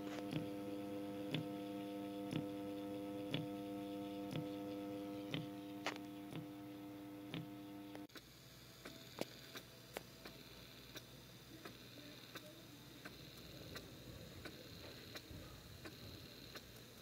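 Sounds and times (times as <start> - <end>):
stepper motor humming: 0.0 - 9.6
stepper motor clicks: 0.0 - 17.0.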